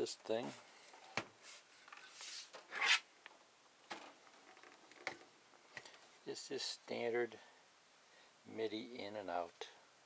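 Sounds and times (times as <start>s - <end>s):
equipment handling rubbing and scraping: 0.8s - 3.0s.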